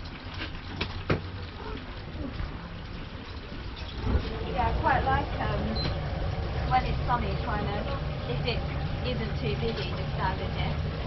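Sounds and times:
low street rumble: 0.0 - 11.0
indistinct voices: 4.0 - 11.0.

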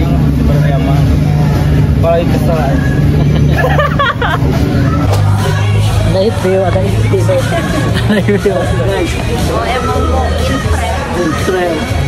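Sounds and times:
vehicle engine running: 0.0 - 9.8.

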